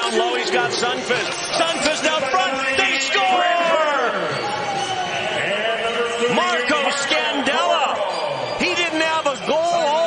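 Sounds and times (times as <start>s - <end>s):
male commentator talking: 0.0s - 4.5s, 5.2s - 10.0s.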